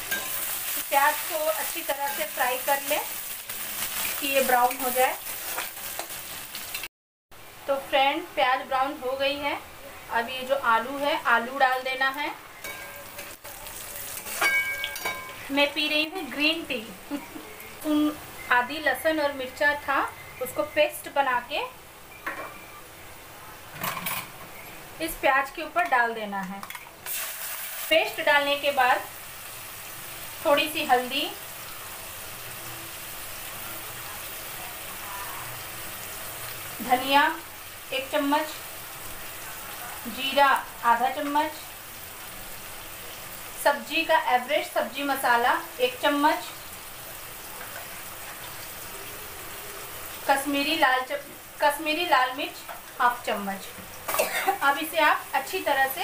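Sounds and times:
spatula stirring in pan: 0.0s - 0.8s
onions sizzling in hot oil: 0.0s - 6.9s, 7.5s - 22.2s, 27.0s - 56.0s.

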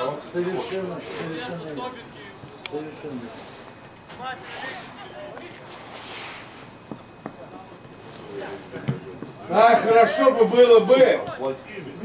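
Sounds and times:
distant players shouting: 8.8s - 11.8s.

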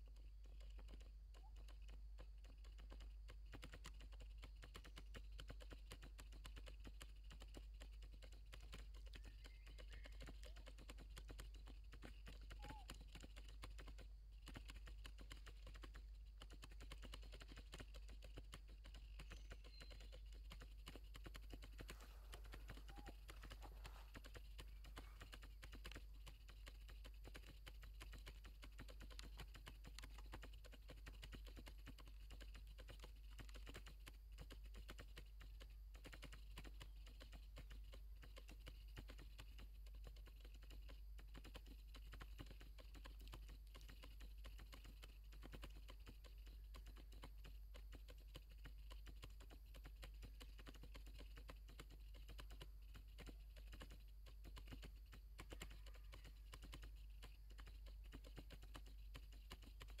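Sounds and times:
light ticking and crackling: 0.0s - 60.0s.

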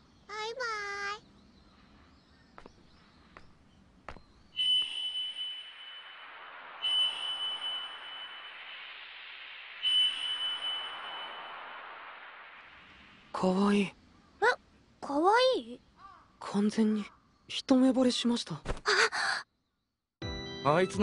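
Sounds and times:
ringing chime strikes: 4.6s - 12.6s.

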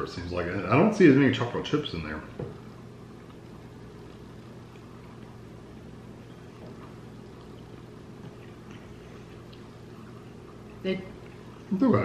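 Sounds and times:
steady low hum: 0.0s - 12.0s
quiet chewing: 2.2s - 11.7s.

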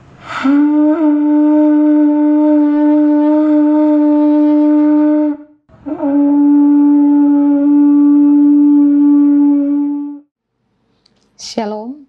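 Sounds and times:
conch shell trumpet notes: 0.4s - 10.3s.

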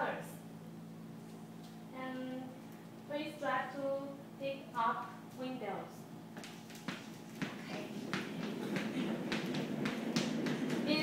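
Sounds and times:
footsteps on a hard floor: 6.4s - 11.0s.

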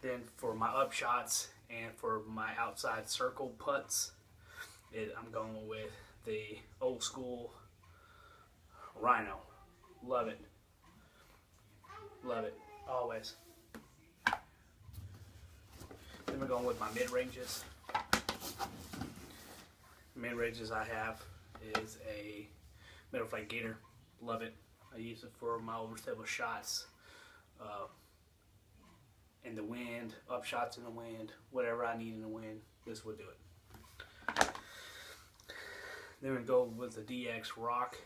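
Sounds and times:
soft rustling in bag: 14.9s - 17.8s, 18.4s - 20.2s
plastic discs knocking together: 17.9s - 18.4s, 34.2s - 34.7s.

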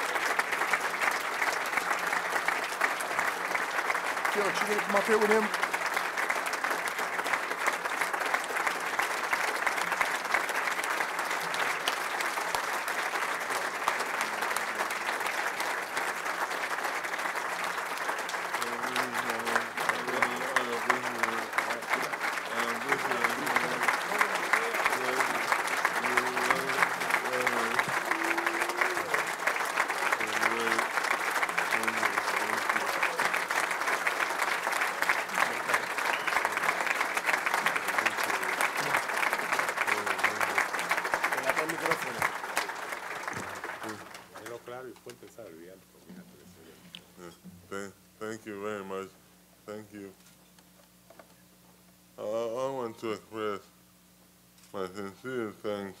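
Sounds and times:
audience applauding: 0.0s - 45.6s.

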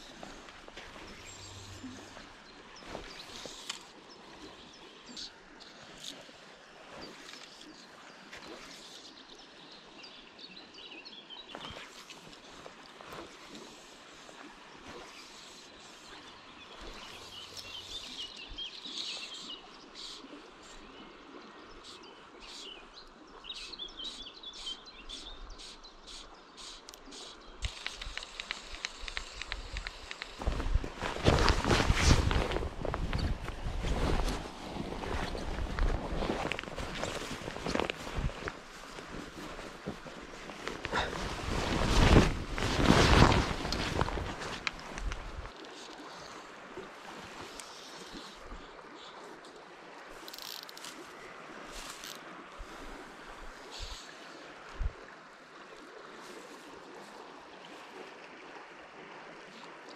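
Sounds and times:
footsteps through grass: 0.0s - 3.9s, 30.0s - 45.6s
faint birdsong: 0.0s - 46.5s
wind buffeting microphone: 29.6s - 40.0s.

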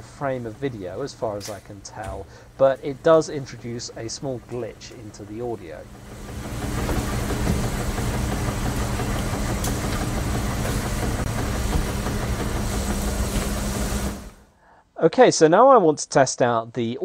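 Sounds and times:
low machine hum with rumble: 0.0s - 14.5s.

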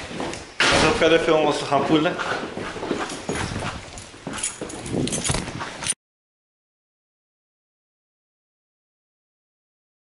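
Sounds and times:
knocks and handling noises: 0.0s - 6.0s.

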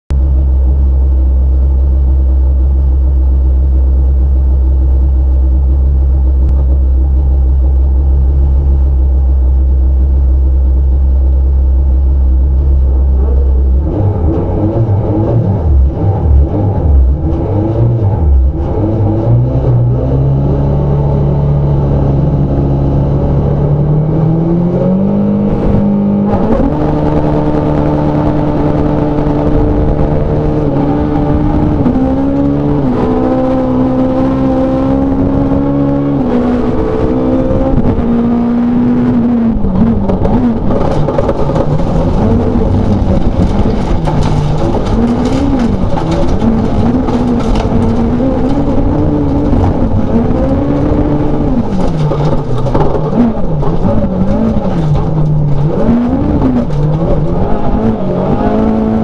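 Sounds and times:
car engine revving: 0.1s - 59.0s.

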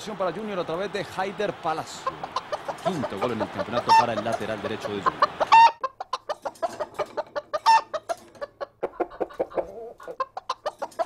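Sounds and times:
chicken clucking: 2.0s - 11.0s
chicken squawk: 2.0s - 11.0s.

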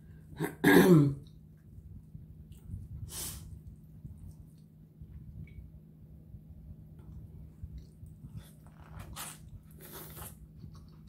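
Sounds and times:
woman clearing her throat: 0.4s - 1.2s.

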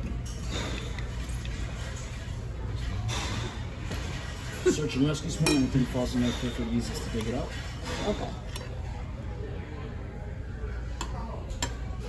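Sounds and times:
restaurant background hum: 0.0s - 12.0s.

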